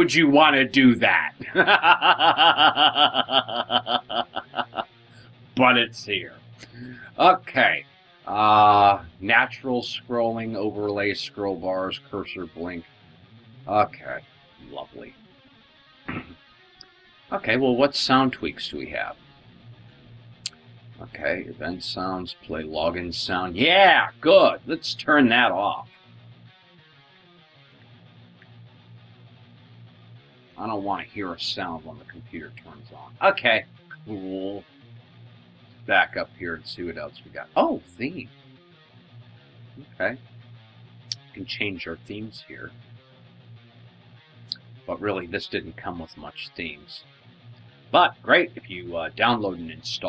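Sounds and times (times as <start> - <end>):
faint guitar music: 0.0 - 50.0
man laughing: 1.0 - 4.9, 16.1 - 16.4.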